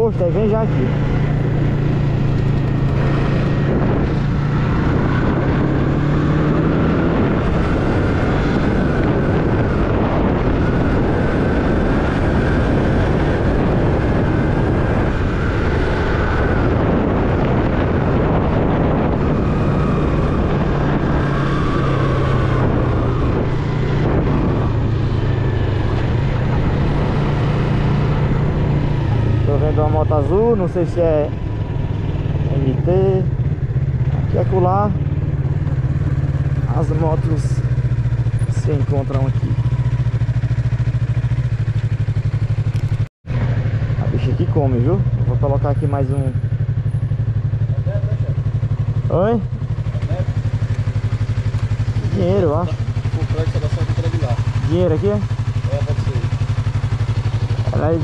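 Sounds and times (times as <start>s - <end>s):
motorcycle engine running: 0.0s - 58.0s
wind rushing over microphone: 0.0s - 58.0s.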